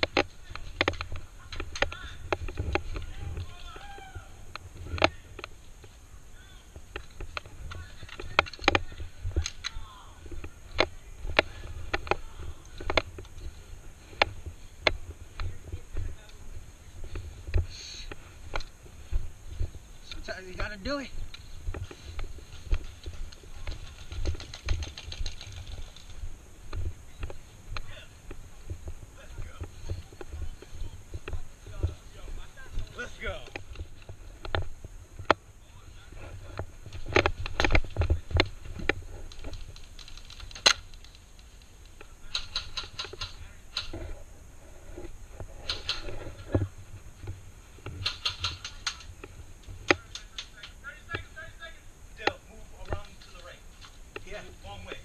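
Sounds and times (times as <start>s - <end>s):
footsteps: 0.0s - 55.0s
airsoft guns firing clicks: 37.1s - 44.0s, 45.6s - 46.4s, 47.9s - 51.2s.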